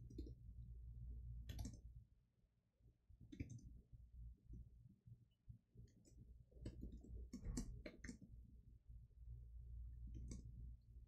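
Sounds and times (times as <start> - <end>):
computer keyboard typing: 1.5 - 1.8.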